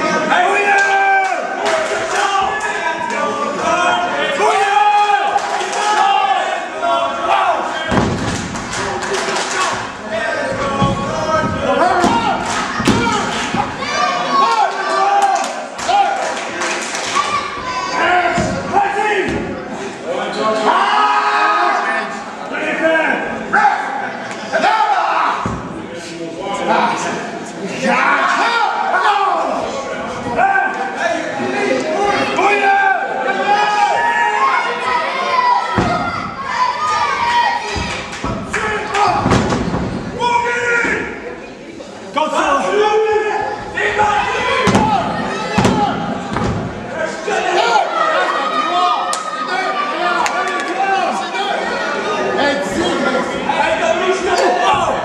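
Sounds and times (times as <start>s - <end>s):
crowd shouting in a hall: 0.0s - 55.0s.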